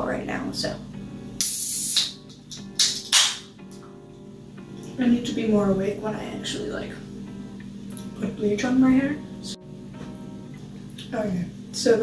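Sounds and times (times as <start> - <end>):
plucked guitar music: 0.0 - 12.0
soda can opening hiss: 1.4 - 3.5.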